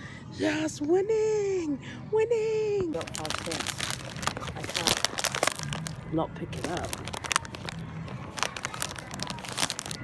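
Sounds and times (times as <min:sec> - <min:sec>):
plastic packet crinkling: 0:02.9 - 0:10.0.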